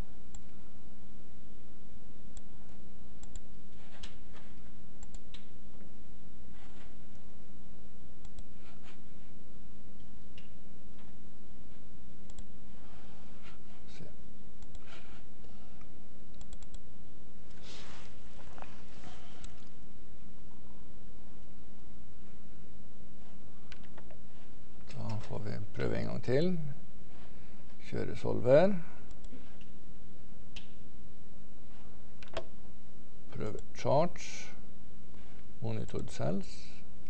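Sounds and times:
low electrical hum: 0.0 - 37.0
computer mouse clicks: 3.2 - 4.2, 5.0 - 5.5, 8.2 - 8.5, 12.2 - 12.5, 14.6 - 14.9, 16.3 - 16.8, 19.4 - 19.7, 32.2 - 32.5.

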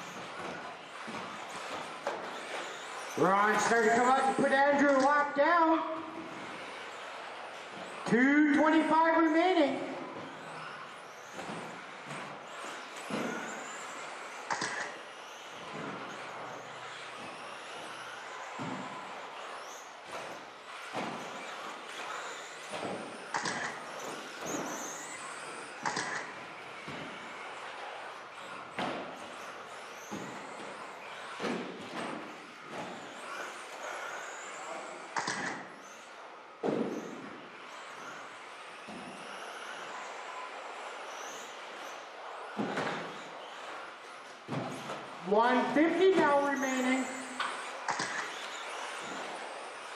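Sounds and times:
rc car motors whining: 0.0 - 49.9
rc cars knocking on landing: 10.2 - 49.9.

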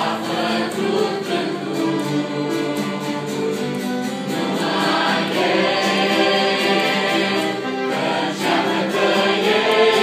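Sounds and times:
mixed choir singing a hymn: 0.0 - 10.0.

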